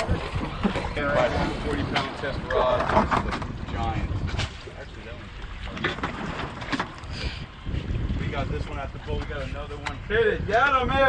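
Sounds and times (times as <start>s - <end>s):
low wind and water rumble: 0.0s - 11.0s.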